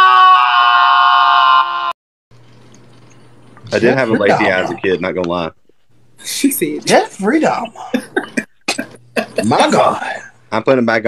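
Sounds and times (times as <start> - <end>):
person screaming high-pitched: 0.0 - 1.9.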